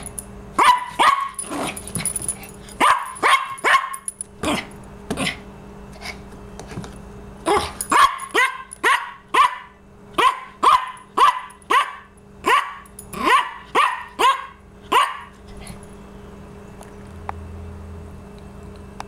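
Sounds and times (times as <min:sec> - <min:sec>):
small dog barking: 0:00.6 - 0:01.4, 0:02.8 - 0:04.6, 0:07.4 - 0:15.3.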